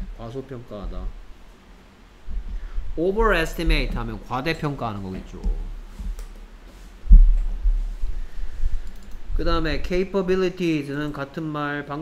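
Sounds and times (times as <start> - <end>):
low thumps on microphone: 2.2 - 4.3, 5.3 - 6.4, 7.0 - 9.5.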